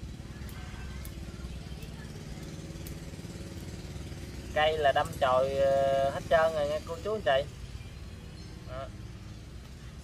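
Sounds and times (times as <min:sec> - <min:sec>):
small engine idling: 0:00.0 - 0:10.0.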